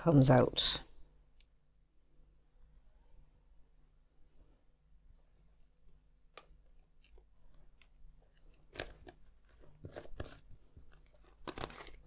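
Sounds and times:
plastic lids scraping and clicking: 8.4 - 12.0.

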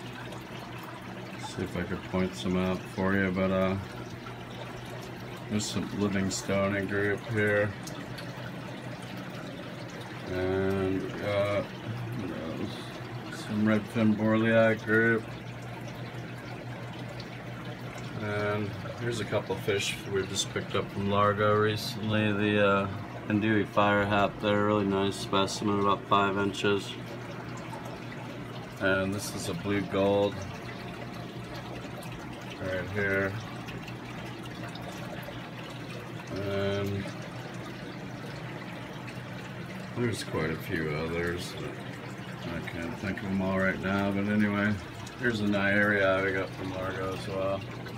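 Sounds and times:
air bubbles streaming: 0.0 - 47.9
aquarium water trickling: 0.0 - 47.9
steady low hum: 0.0 - 47.9.

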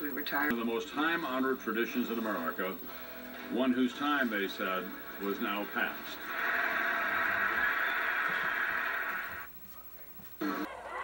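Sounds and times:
hissy television sound: 0.0 - 11.0
television programme sound: 0.0 - 11.0.

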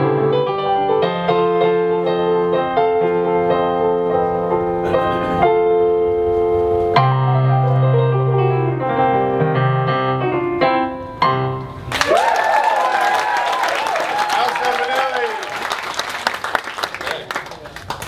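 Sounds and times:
digital piano chords: 0.0 - 12.0
audience applause and cheering: 11.8 - 18.0.

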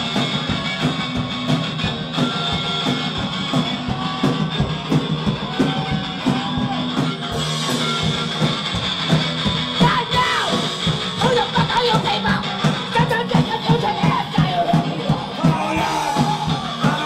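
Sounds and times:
punk band playing: 0.0 - 17.0
vocalist yelling: 9.8 - 17.0.

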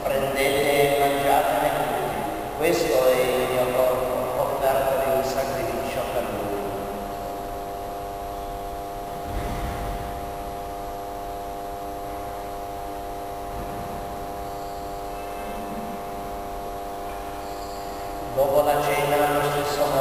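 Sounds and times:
steady hum of held tones: 0.0 - 20.0.

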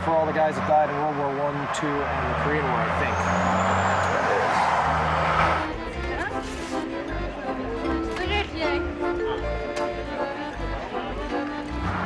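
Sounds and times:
broad rushing noise: 0.0 - 5.8
vehicle engine drone: 0.0 - 7.7, 9.4 - 12.0.

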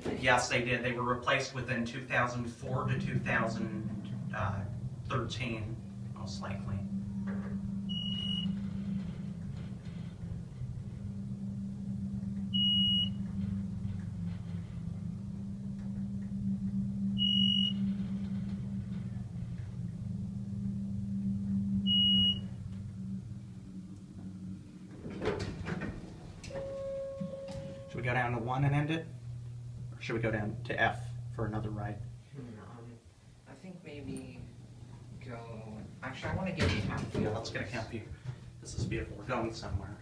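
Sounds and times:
elevator pump motor humming: 0.0 - 40.0
short high beep: 17.2 - 17.8, 21.9 - 22.5.

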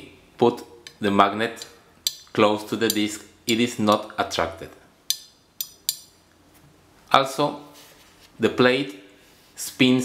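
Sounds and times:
magnet tapping on metal: 1.6 - 4.1, 5.1 - 6.2.

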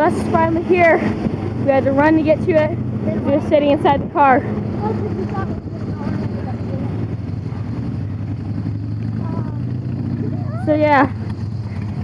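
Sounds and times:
faint voices: 0.0 - 7.8
vehicle engines idling: 0.0 - 12.0.

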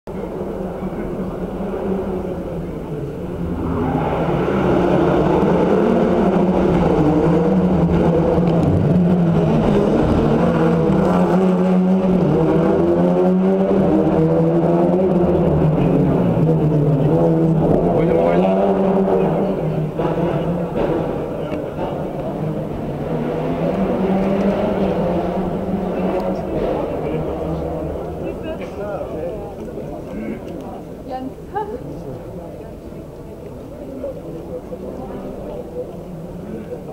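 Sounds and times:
rally car engine running: 0.1 - 30.4.

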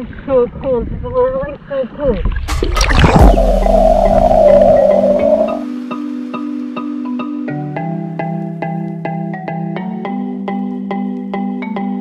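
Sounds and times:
muffled underwater rush: 2.0 - 5.7
water splashing: 2.1 - 5.7
music with sustained tones: 3.0 - 9.3.

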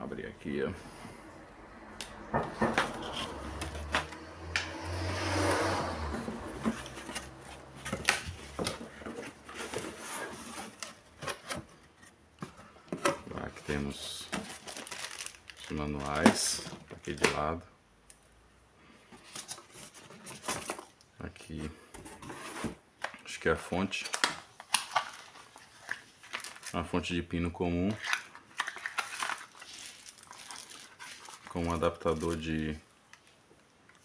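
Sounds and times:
cardboard box rustling scrape: 4.8 - 12.2, 22.0 - 22.8.

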